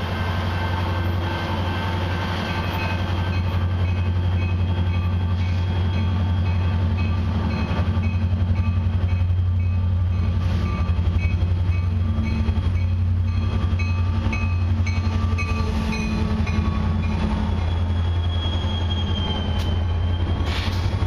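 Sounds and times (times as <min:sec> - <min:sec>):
diesel locomotive engine drone: 0:00.0 - 0:21.0
railcars rolling on steel rails: 0:00.0 - 0:21.0
high wheel squeal: 0:12.2 - 0:21.0.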